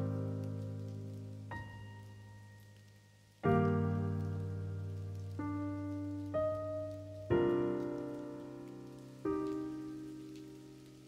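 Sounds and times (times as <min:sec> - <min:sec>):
piano chord ringing: 0:00.0 - 0:02.8.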